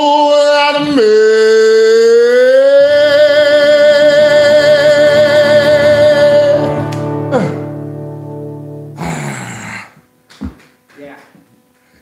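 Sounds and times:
man singing long high note: 0.0 - 7.8
acoustic guitar chords: 0.0 - 10.2.

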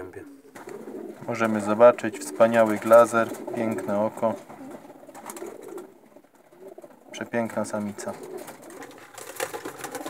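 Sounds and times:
pigeons cooing: 0.0 - 10.0
rustling: 0.3 - 10.0.

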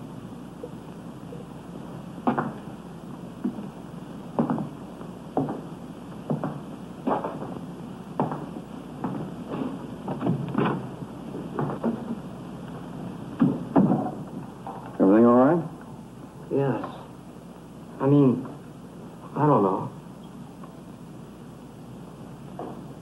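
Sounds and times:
soundtrack hiss: 0.0 - 23.0
footsteps on hard floor: 2.2 - 2.8, 3.4 - 12.3, 13.4 - 14.5.

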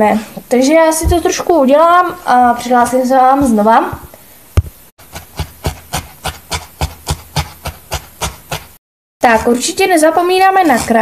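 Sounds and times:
felting needle jabbing into foam: 4.6 - 9.4.

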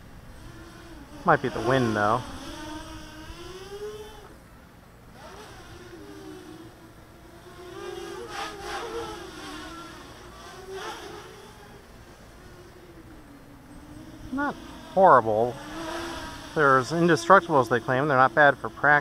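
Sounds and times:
quadcopter motors buzzing whine: 0.0 - 19.0.

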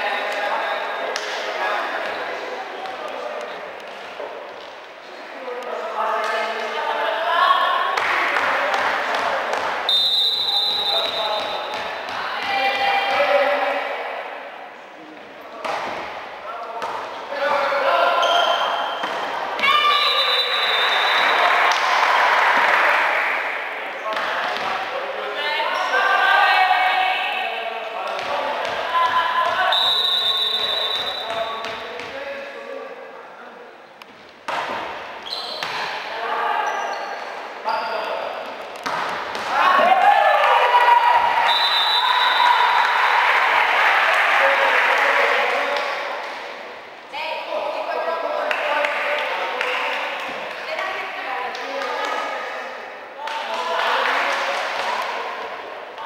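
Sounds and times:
referee's whistle blasts: 9.9 - 11.7, 19.8 - 21.4, 29.7 - 31.3, 41.4 - 42.6
players and spectators cheering: 19.6 - 23.8, 39.5 - 45.7.

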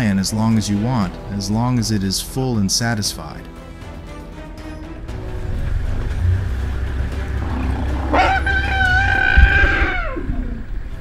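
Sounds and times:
deep low rumble: 4.8 - 11.0
elephant trumpeting: 5.1 - 10.9.

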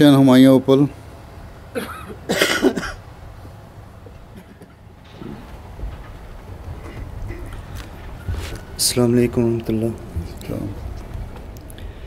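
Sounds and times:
person coughing: 1.8 - 3.0.

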